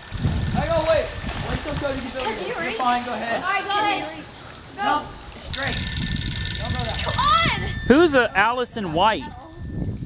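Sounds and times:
electronic phone ringtone: 5.6 - 8.5.

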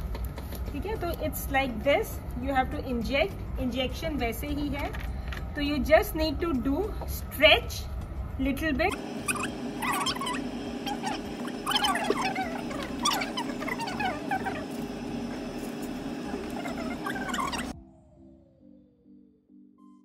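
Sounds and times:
soft background music: 0.0 - 8.9
steady low hum: 0.3 - 17.8.

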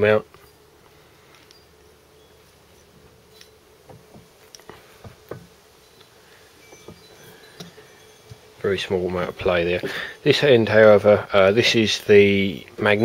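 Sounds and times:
low steady hum: 0.0 - 13.0
faint metallic knocks: 3.3 - 8.5.

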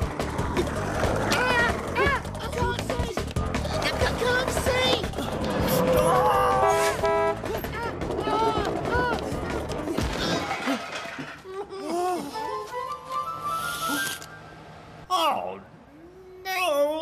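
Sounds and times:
car horn honking: 6.1 - 7.6.

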